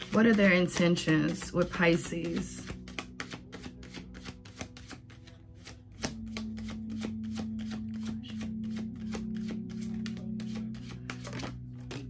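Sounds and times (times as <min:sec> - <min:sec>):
background music with held notes: 0:00.0 - 0:12.0
cards being shuffled: 0:00.0 - 0:12.0.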